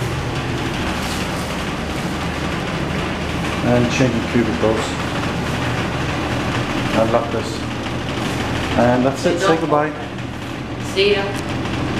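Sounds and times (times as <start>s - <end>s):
ventilation system humming: 0.0s - 11.9s.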